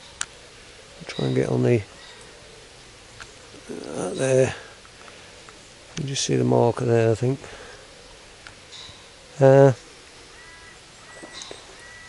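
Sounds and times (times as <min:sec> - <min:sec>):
bird calling faintly: 0:00.0 - 0:06.4, 0:07.2 - 0:12.0.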